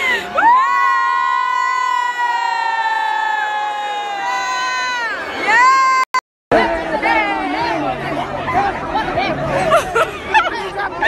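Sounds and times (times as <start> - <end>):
crowd cheering: 0.0 - 9.4.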